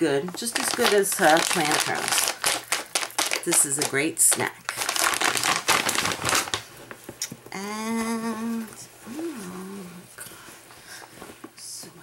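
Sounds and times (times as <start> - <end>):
plastic snack bag crinkling: 0.2 - 7.1.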